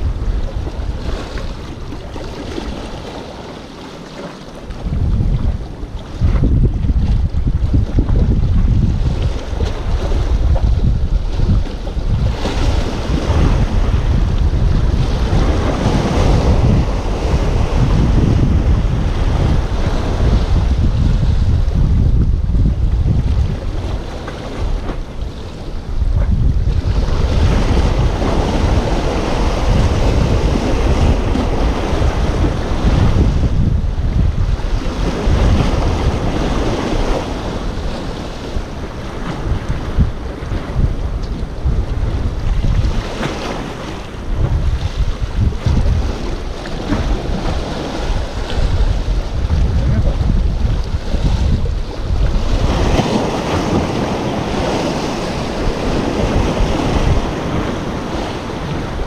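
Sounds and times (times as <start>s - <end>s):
wind buffeting microphone: 0.0s - 3.5s, 4.6s - 59.0s
waves washing against rocks: 0.0s - 59.0s.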